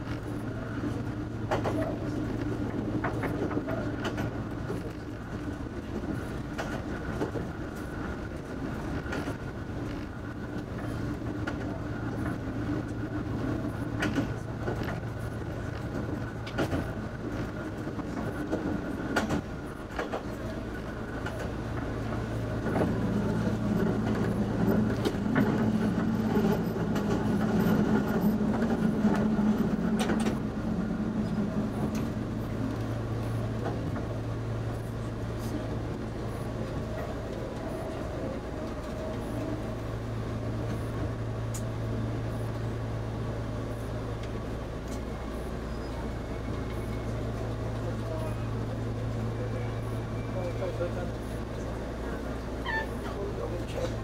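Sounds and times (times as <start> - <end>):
wheels clicking over rail joints: 1.0 - 42.7.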